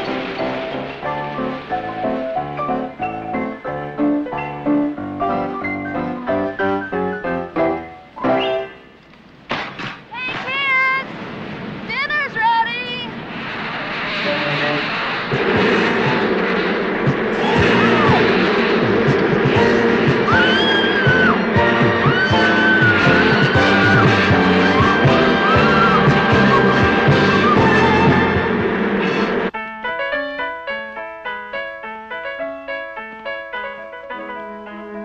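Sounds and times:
film music: 0.0 - 9.0, 14.2 - 35.0
shrill arching cries: 17.0 - 18.8, 19.6 - 28.8.

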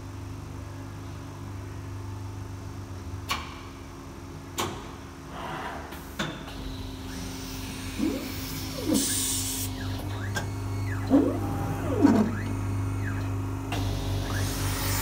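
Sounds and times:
motor hum: 6.6 - 15.0
drive motors whining: 7.1 - 15.0.

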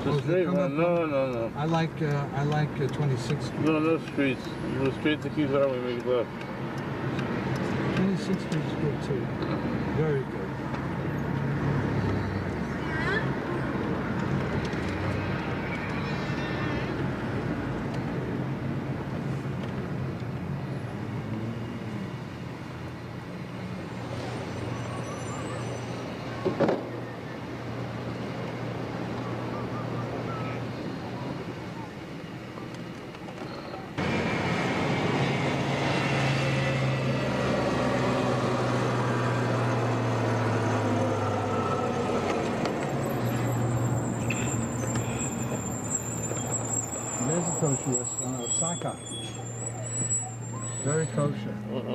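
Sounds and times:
tyre and road rush: 0.0 - 51.9.

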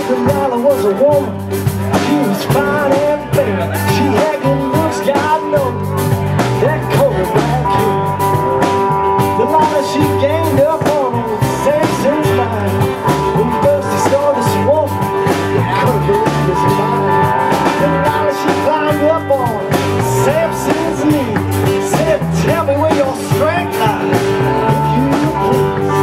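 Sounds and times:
bass line: 0.0 - 26.0
electric guitar bending notes: 0.0 - 26.0.

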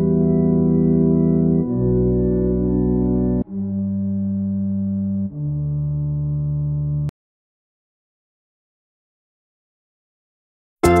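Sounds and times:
electronic keyboard low notes: 0.0 - 7.1.

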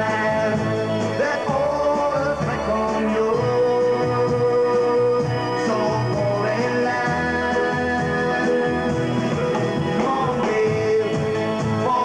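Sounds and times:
man singing with pop-rock band: 0.0 - 12.0.

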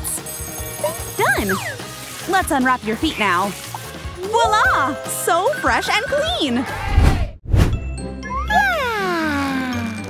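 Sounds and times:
background music: 0.0 - 7.0, 7.7 - 10.0.

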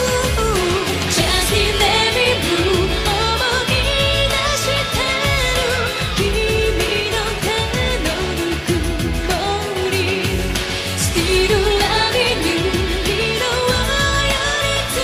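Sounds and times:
band with electric guitar: 0.0 - 15.0
woman singing into microphone: 0.0 - 15.0.

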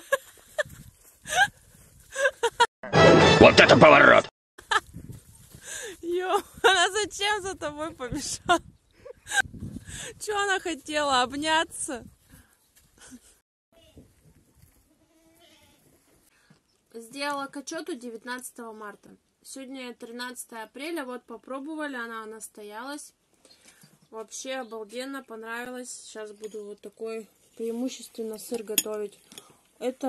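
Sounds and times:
music and voice clip: 2.8 - 4.3
goat bleating: 14.9 - 15.8.

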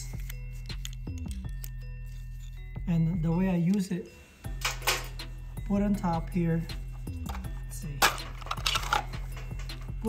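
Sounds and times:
steel parts clinking: 7.3 - 10.0.

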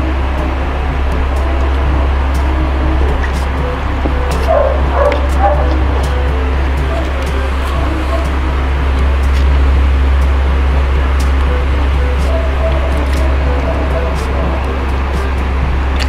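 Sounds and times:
dog barking: 3.8 - 8.5, 11.6 - 15.3.

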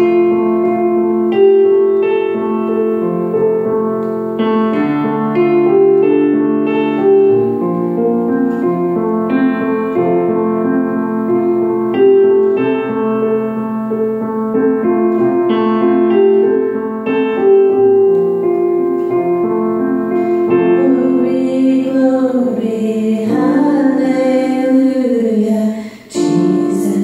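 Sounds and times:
keyboard piano chords: 0.0 - 27.0.

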